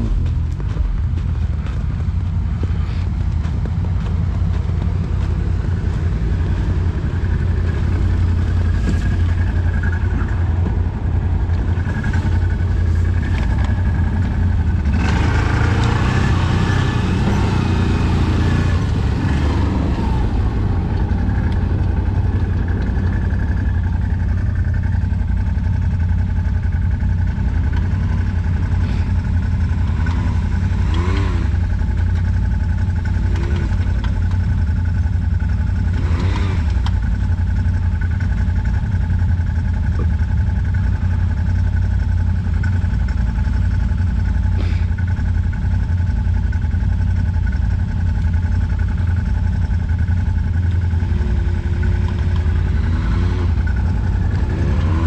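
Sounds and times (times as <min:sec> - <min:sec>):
atv engine running: 0:00.0 - 0:55.0.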